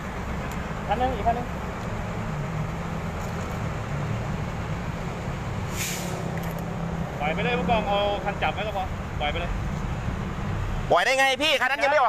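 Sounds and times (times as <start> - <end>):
short burst of hiss: 5.7 - 6.3.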